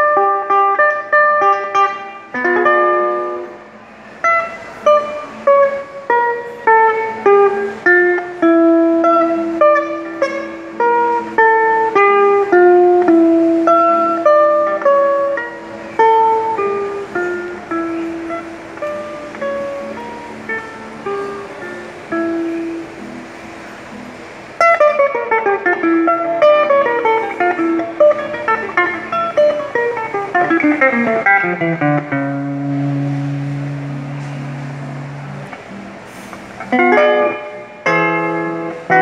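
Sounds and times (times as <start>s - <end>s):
solo guitar picking: 0.0s - 39.0s.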